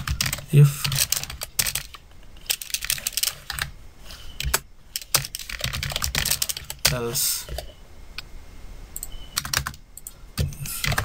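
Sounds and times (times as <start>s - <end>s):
keyboard typing: 0.0s - 3.7s, 4.4s - 7.7s, 9.0s - 11.0s.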